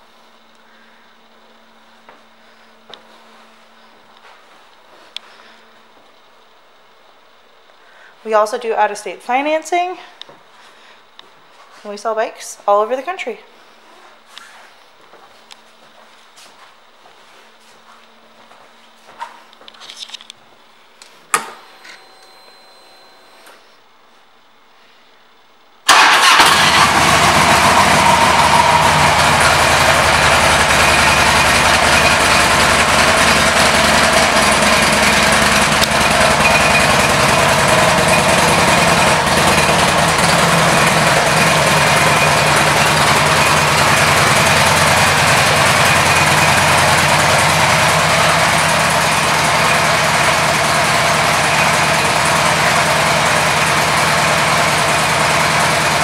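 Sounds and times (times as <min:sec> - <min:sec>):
motorcycle engine idling: 0:25.9 - 0:56.0
motorcycle engine starting: 0:25.9 - 0:56.0.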